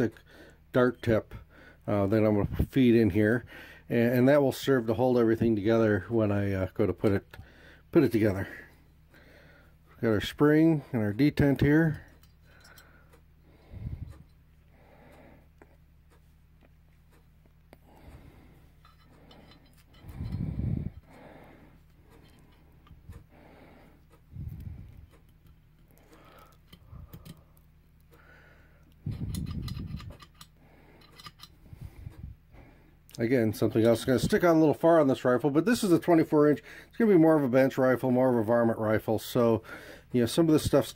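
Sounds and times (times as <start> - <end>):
small metal parts clicking: 18.8 - 20.6, 25.1 - 27.6, 28.9 - 31.6.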